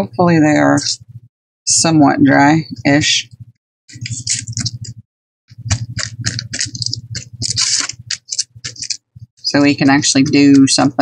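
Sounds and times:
paper rustling: 3.9s - 4.9s, 5.5s - 9.1s.

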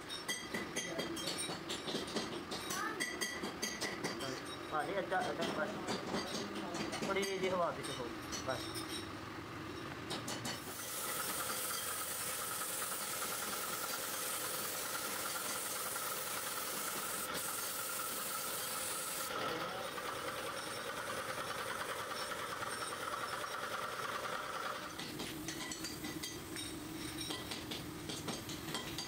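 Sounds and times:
spray gun hissing: 10.6s - 19.4s.

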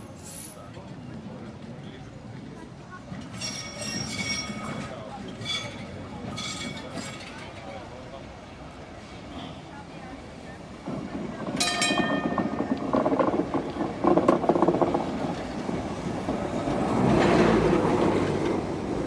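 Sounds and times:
tram wheels clattering on rails: 0.1s - 19.0s
tram motor and gear tones: 10.7s - 19.0s
high ringing: 11.6s - 12.7s.

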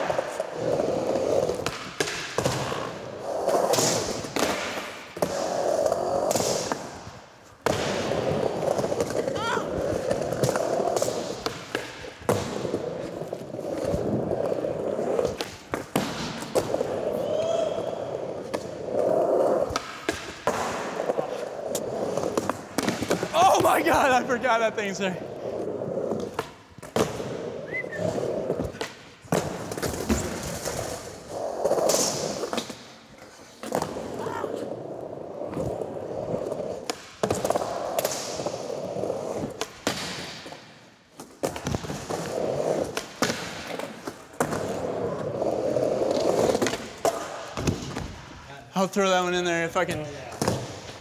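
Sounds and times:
skateboard wheels rolling: 0.0s - 48.4s
skateboard clacks: 18.4s - 23.8s.

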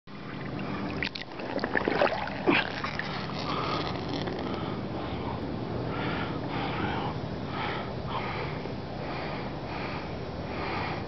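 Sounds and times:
small water splashes: 0.1s - 4.5s
shallow water sloshing: 0.1s - 4.7s.

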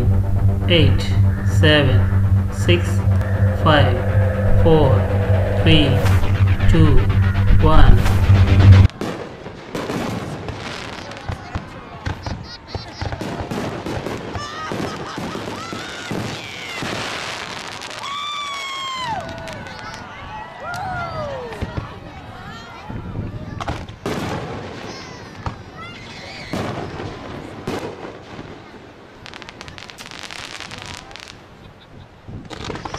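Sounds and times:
fireworks popping and crackling: 8.9s - 18.2s, 26.6s - 31.4s, 32.4s - 32.9s
fireworks bursting: 26.6s - 31.5s, 32.4s - 32.9s.

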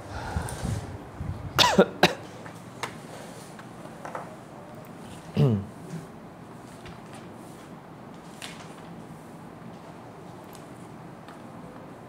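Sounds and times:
man coughing: 1.6s - 2.2s, 5.4s - 5.7s.

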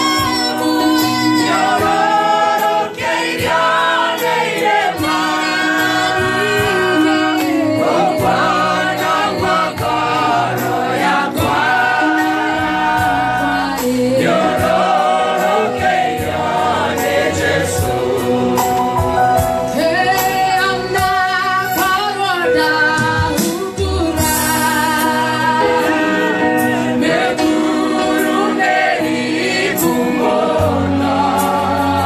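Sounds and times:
choir singing gospel: 0.0s - 32.0s
instrumental backing: 0.0s - 32.0s.

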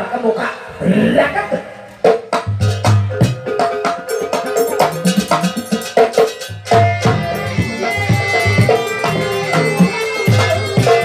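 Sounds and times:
deep drum beats: 2.0s - 11.0s
ringing metal notes: 3.2s - 11.0s.

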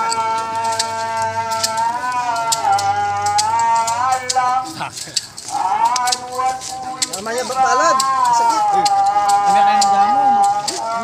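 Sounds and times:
person chanting in wavering notes: 0.0s - 11.0s.

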